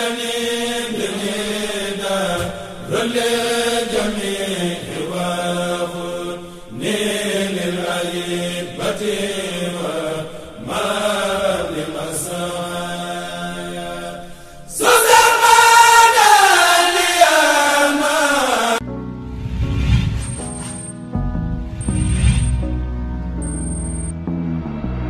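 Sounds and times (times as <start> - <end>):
devotional chanting: 0.0 - 18.8.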